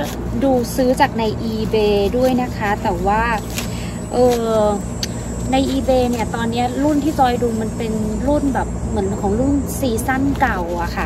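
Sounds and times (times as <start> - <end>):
low background rumble: 0.0 - 11.0
woman speaking: 0.0 - 11.0.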